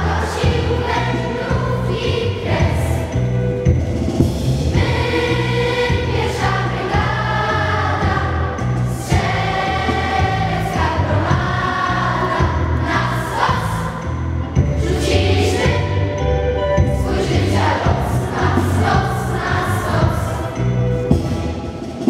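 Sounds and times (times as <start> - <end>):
choir singing: 0.0 - 3.4, 4.7 - 22.0.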